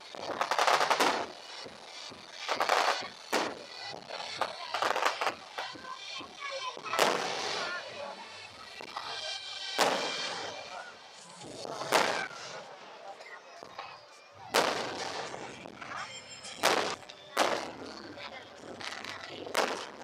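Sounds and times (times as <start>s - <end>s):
firework shells bursting: 0.0s - 12.6s, 14.5s - 18.2s, 18.8s - 20.0s.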